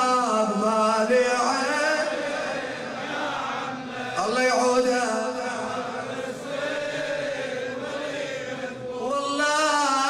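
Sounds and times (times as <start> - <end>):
man chanting a lament: 0.0 - 10.0.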